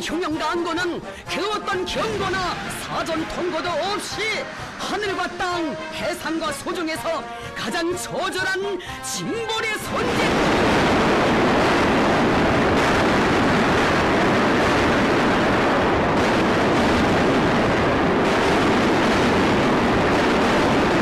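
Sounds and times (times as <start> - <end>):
loud roaring rush: 1.0 - 7.6, 9.8 - 21.0.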